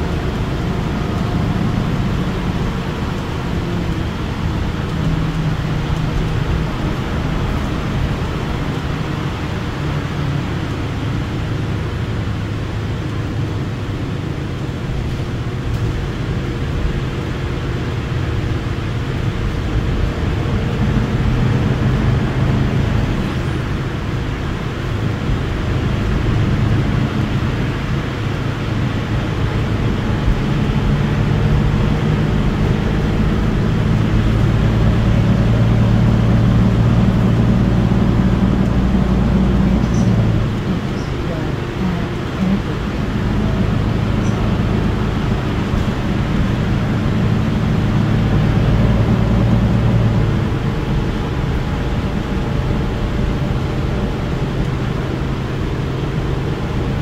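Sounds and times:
bus engine drone: 0.0s - 57.0s.

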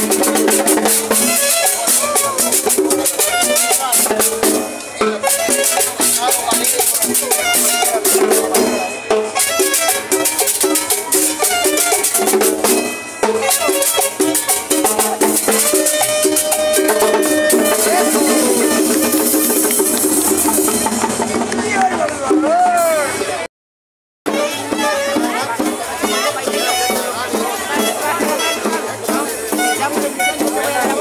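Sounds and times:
shaken percussion: 0.0s - 23.4s, 24.3s - 31.0s
drums: 0.0s - 23.5s, 24.2s - 31.0s
live band playing dance music: 0.0s - 23.5s, 24.3s - 31.0s.

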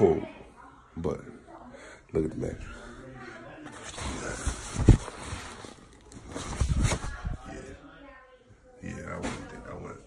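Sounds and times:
rustling bedding: 3.8s - 7.5s.

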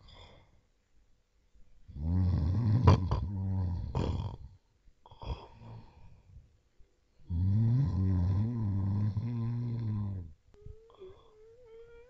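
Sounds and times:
low rasping snore: 1.9s - 4.5s, 7.3s - 10.3s.

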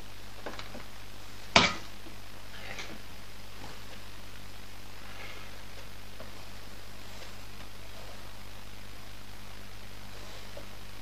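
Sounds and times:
steady low hum: 0.0s - 11.0s
faint scraping on paper: 6.4s - 8.4s, 10.0s - 10.9s.

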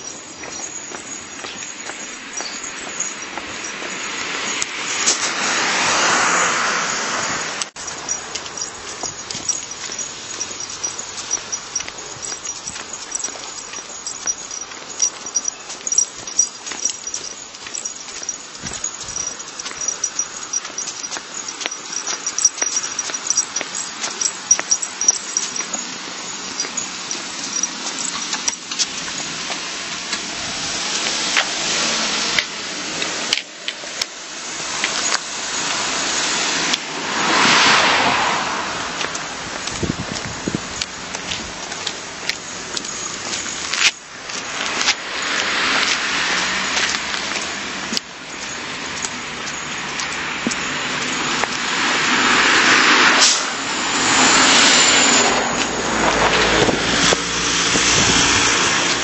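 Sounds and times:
cars passing: 0.0s - 59.0s
footsteps on pavement: 0.0s - 59.0s.

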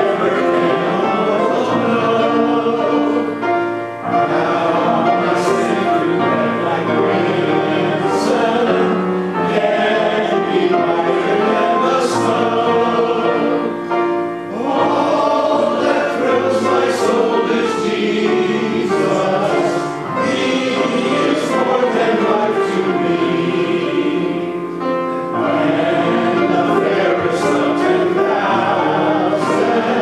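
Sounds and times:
congregation singing a hymn: 0.0s - 30.0s.

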